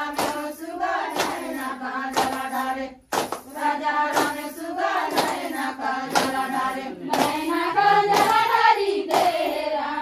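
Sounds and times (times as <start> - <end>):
hands clapping: 0.0 - 9.7
women singing in chorus: 0.0 - 10.0.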